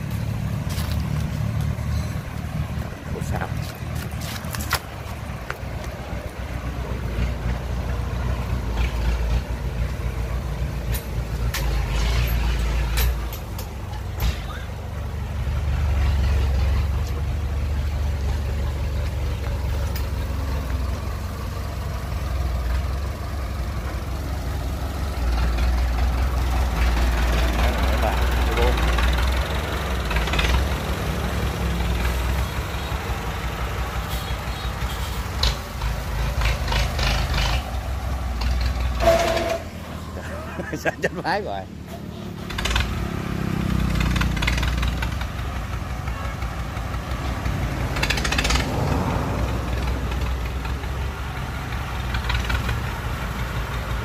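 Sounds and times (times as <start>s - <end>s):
diesel tractor engine under load: 0.0s - 54.0s.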